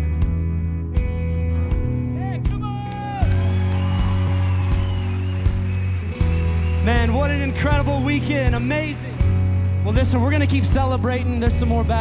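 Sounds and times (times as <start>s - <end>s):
worship band music: 0.3s - 12.0s.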